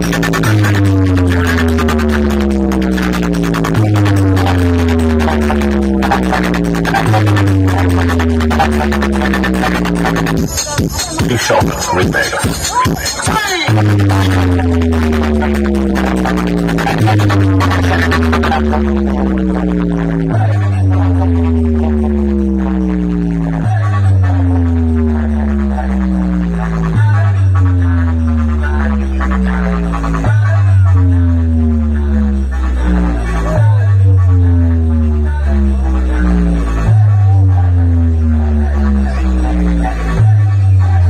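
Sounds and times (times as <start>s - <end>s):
heavy bass drone: 0.0s - 41.0s
loud electronic music: 0.0s - 41.0s.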